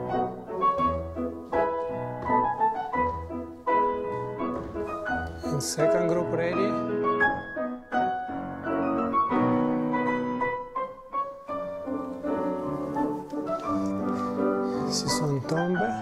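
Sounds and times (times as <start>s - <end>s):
classical piano playing: 0.0s - 16.0s.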